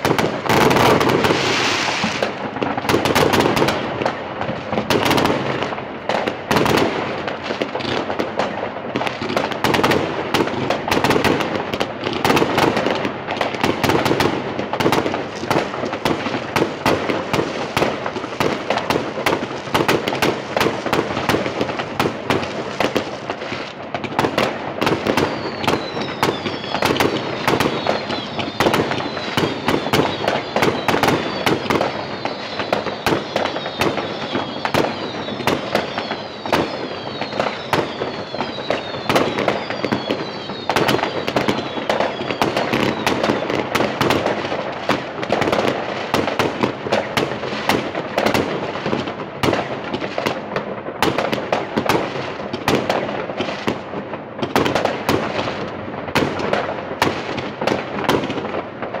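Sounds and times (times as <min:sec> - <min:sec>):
shells bursting overhead: 0:00.0 - 0:23.4
fireworks bangs and crackles: 0:00.0 - 0:59.0
falling whistles: 0:25.1 - 0:43.5.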